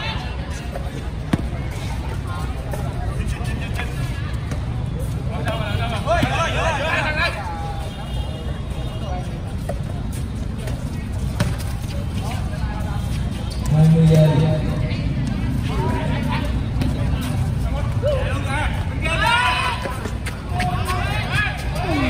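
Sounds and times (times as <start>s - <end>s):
steady background noise: 0.0s - 22.0s
voices of players and onlookers: 0.0s - 22.0s.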